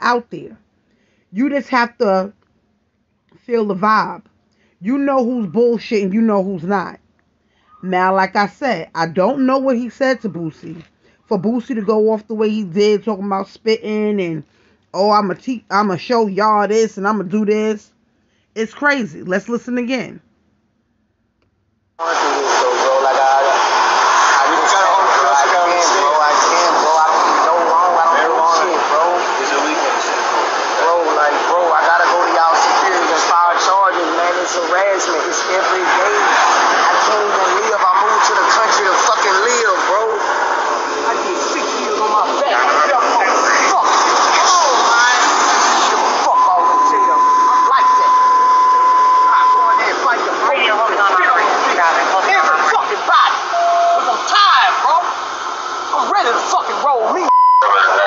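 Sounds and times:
men talking and arguing: 0:03.4 - 0:06.9, 0:07.6 - 0:17.9, 0:22.0 - 0:58.0
short lower beep: 0:46.3 - 0:50.0, 0:57.3 - 0:57.8
steady beep: 0:46.3 - 0:50.2, 0:57.3 - 0:58.0.

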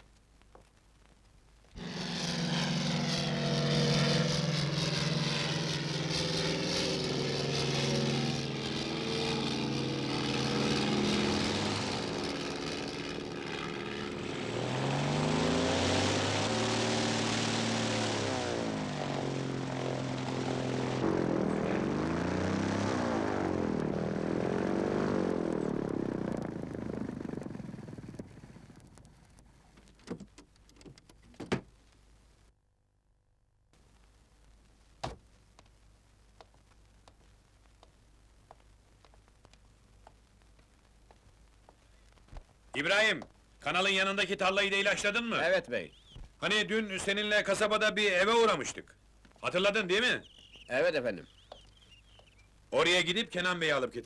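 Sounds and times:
propeller plane engine running: 0:01.8 - 0:31.4, 0:49.2 - 0:52.7.

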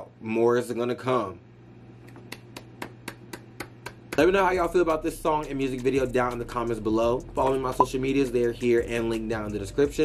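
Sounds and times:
light hand claps: 0:02.0 - 0:04.3.

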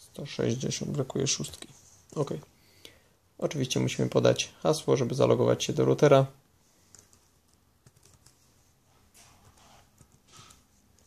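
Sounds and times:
computer keyboard keystrokes: 0:06.9 - 0:08.4.

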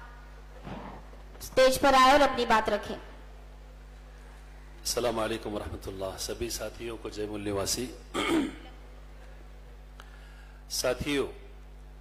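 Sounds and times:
low electrical hum: 0:00.0 - 0:12.0
man clearing throat: 0:08.1 - 0:08.8.

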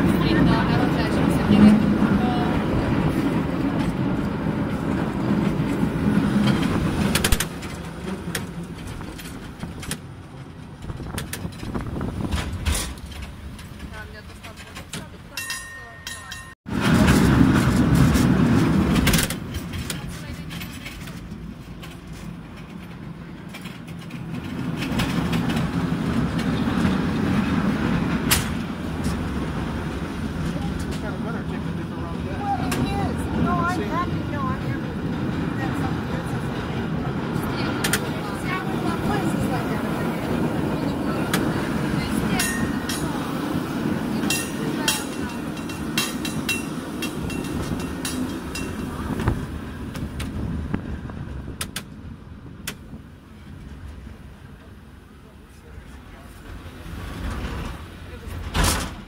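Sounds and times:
cable car rumbling on rails: 0:00.0 - 0:59.0.

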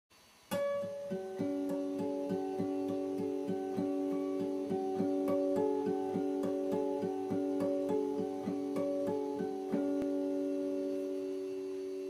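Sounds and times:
acoustic guitar picking: 0:00.5 - 0:11.5.

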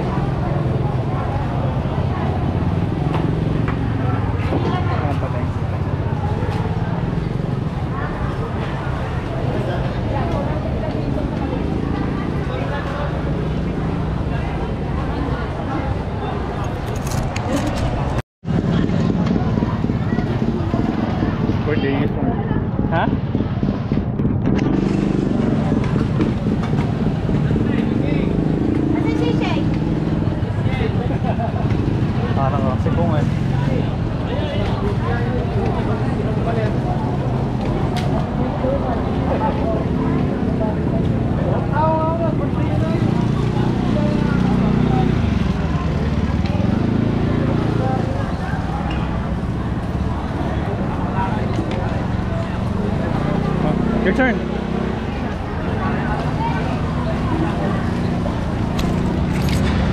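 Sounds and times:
motor vehicles running: 0:00.0 - 0:59.9
people's voices: 0:00.0 - 0:59.9.

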